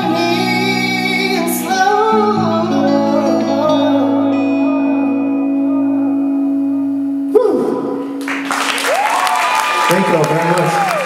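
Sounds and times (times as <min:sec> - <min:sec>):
audience applause and cheering: 0:08.2 - 0:11.0.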